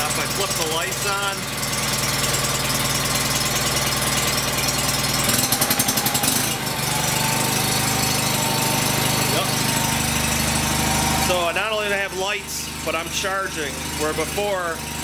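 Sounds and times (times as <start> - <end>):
garden tractor engine idling: 0.0 - 15.0.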